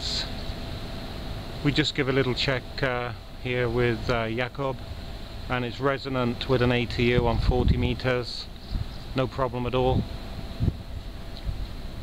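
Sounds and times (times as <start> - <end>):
wind buffeting microphone: 6.3 - 12.0.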